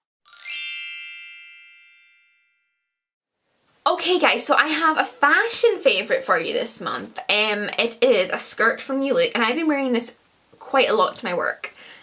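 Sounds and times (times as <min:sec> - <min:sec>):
bright chime ringing: 0:00.3 - 0:02.8.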